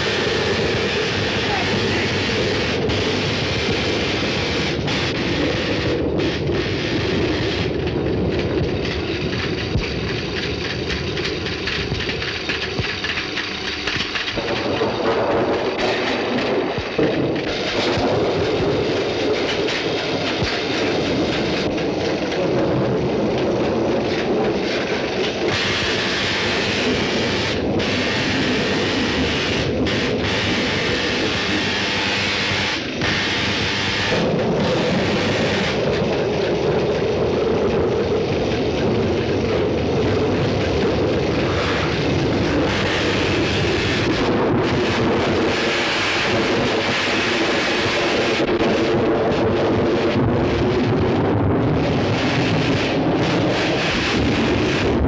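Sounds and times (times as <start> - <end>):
rumbling thunder: 0.0 - 13.2, 13.8 - 55.0
continuous electrical hum: 0.0 - 55.0
steady wind: 0.0 - 55.0.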